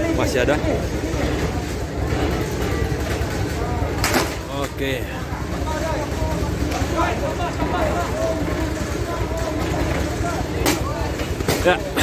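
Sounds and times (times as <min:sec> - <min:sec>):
people talking: 0:00.0 - 0:12.0
vehicle engine idling: 0:00.0 - 0:12.0.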